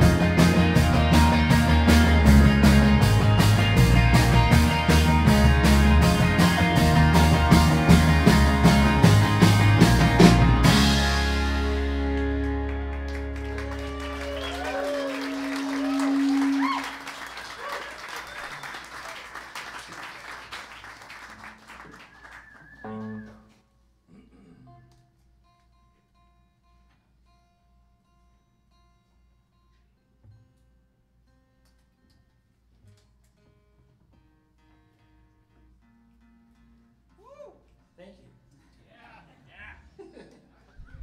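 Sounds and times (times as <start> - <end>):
audience clapping and cheering: 0.0 - 10.7, 11.4 - 23.4
rock band final chord: 0.0 - 17.2
electric guitar notes: 0.0 - 17.7.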